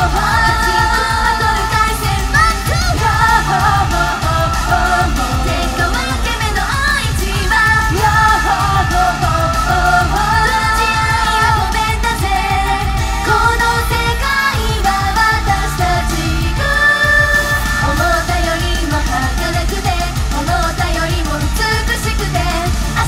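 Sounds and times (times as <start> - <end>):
backing track with driving beat: 0.0 - 23.0
girl group singing pop: 0.0 - 23.0.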